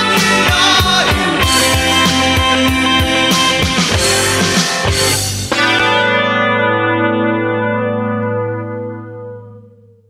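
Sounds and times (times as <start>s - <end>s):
drums and cymbals: 0.0s - 5.8s
distorted electric guitar chord: 0.0s - 10.0s.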